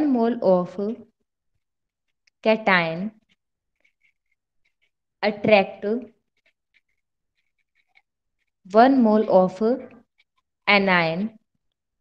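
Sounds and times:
pen scratching on paper: 0.7 - 10.8.

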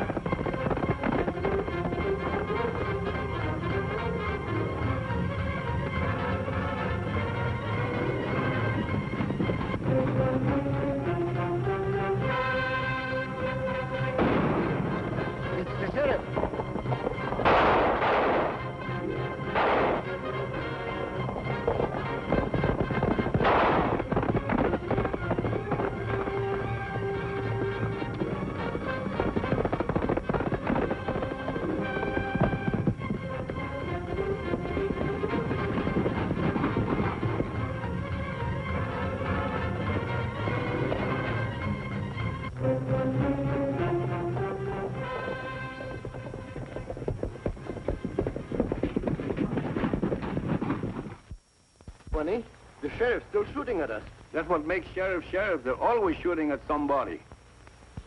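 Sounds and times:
orchestral chase music: 0.0 - 50.3
galloping hoofbeats: 0.0 - 57.1
gunshots: 14.1 - 26.6.

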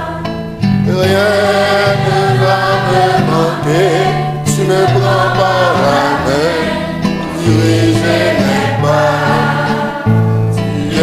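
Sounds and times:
choir singing a hymn: 0.0 - 11.0
classical guitar: 0.0 - 11.0.

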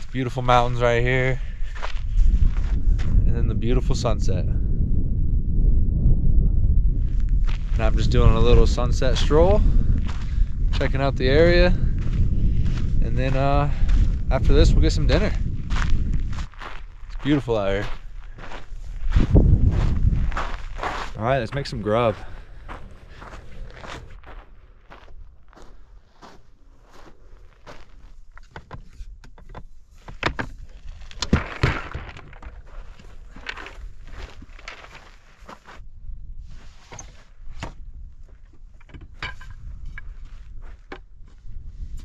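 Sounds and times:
footsteps on dirt: 1.4 - 3.2, 9.8 - 28.3, 30.7 - 35.8
camping gear knocking: 28.4 - 32.7.

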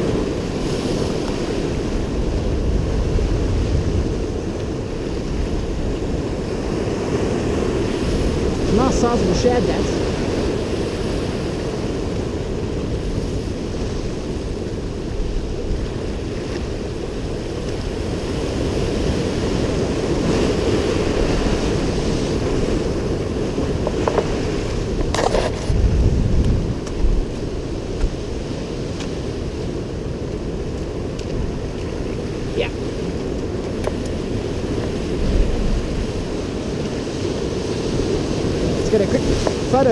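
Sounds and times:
surf washing over rocks: 0.0 - 39.9
wind buffeting microphone: 0.0 - 39.9.

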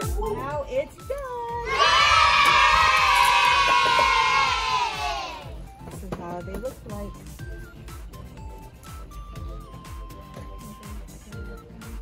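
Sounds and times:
children cheering: 1.7 - 5.6.

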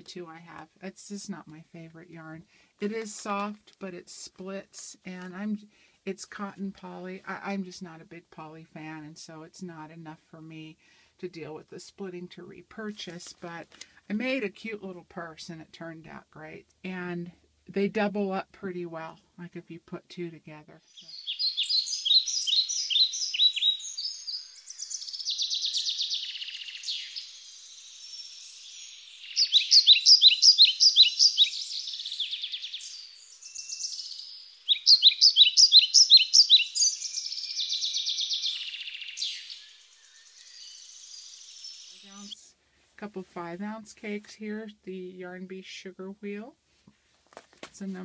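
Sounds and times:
songbirds chirping: 0.0 - 46.8
buzzy bird trills: 20.9 - 42.4.

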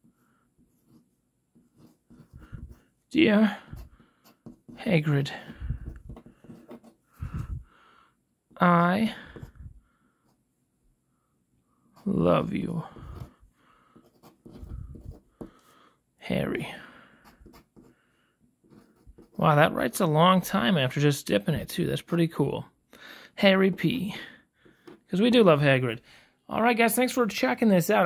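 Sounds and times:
pen nib scratching on paper: 0.1 - 7.4, 14.0 - 15.6, 17.2 - 17.9.

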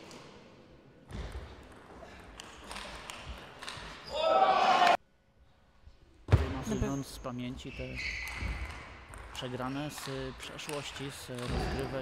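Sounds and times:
large hall ambience: 0.0 - 12.0.

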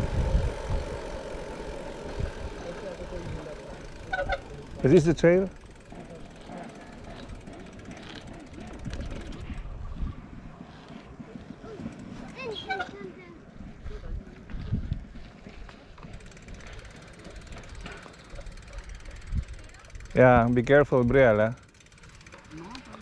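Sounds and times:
wind buffeting microphone: 0.0 - 21.3
bicycle tyre rumble on pavement: 0.0 - 23.0.

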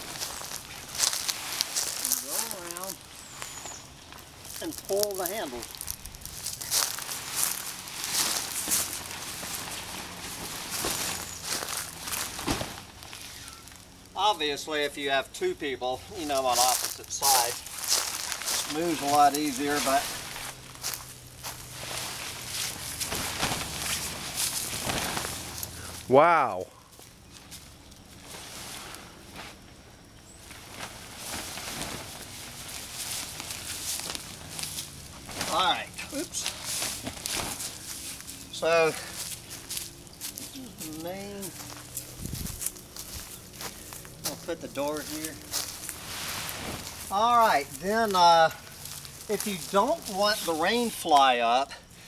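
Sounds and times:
tent fabric rustling and flapping: 0.0 - 14.1, 16.3 - 26.1, 27.4 - 29.7, 30.4 - 51.4
footsteps on leaf litter: 0.0 - 14.4, 16.1 - 26.1, 30.4 - 51.5.

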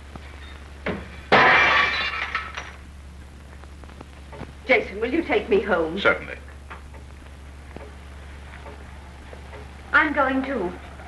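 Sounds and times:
loud crash of something breaking: 1.3 - 2.8.

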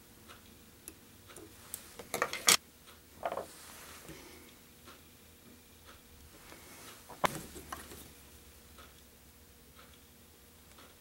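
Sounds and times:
tools clicking and tapping: 0.3 - 2.6.

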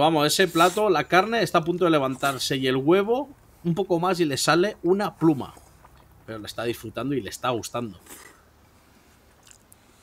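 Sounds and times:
low background hiss: 0.0 - 10.0
faint chewing: 5.4 - 6.4, 8.0 - 10.0
soft mouth clicks: 9.3 - 9.9.

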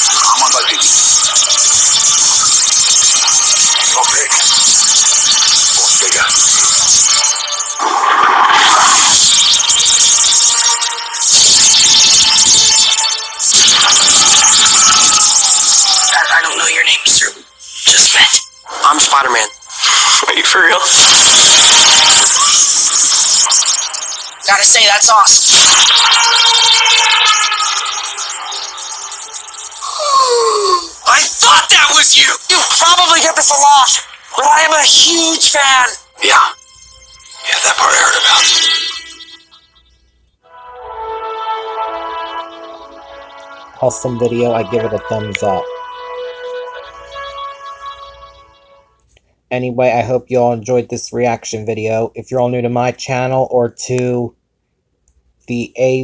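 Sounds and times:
loud trailer soundtrack music: 0.0 - 30.0, 31.0 - 49.0
noisy sound-effect bed: 0.0 - 40.2, 41.2 - 52.0.

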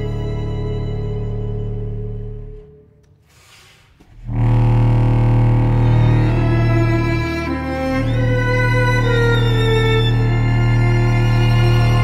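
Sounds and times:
chamber ensemble sustained low chord: 0.0 - 3.1, 4.2 - 12.0.

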